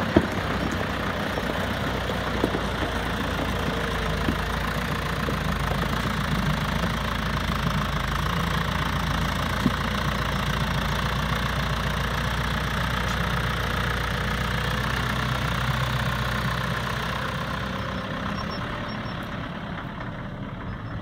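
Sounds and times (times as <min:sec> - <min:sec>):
tractor diesel engine running: 0:00.0 - 0:21.0.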